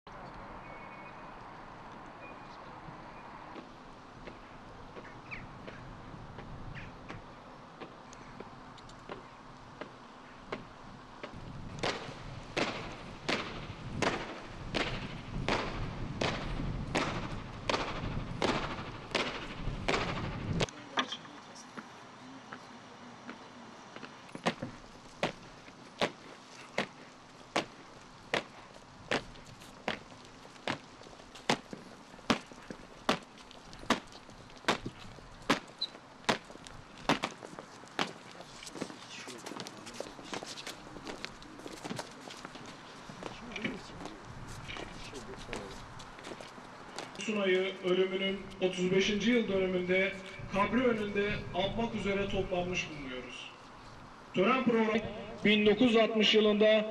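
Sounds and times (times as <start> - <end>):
boots marching on stone: 24.0 - 47.9.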